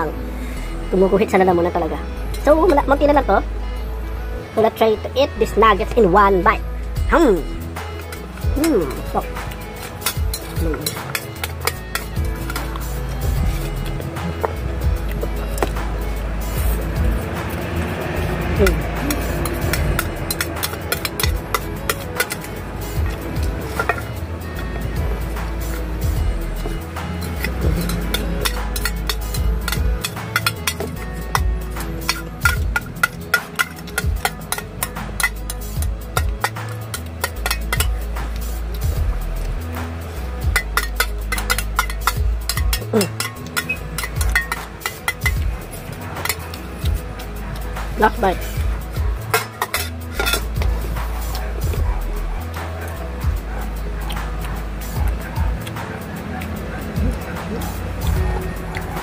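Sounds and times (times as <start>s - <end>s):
background music: 0.0s - 59.0s
spoon and chopsticks clinking on bowl: 9.5s - 12.8s, 19.1s - 24.2s, 27.2s - 38.0s, 40.4s - 45.5s, 49.2s - 50.7s.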